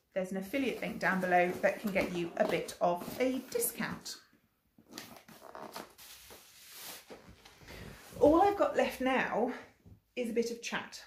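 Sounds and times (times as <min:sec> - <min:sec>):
cardboard and plastic rustling: 0:00.7 - 0:03.8.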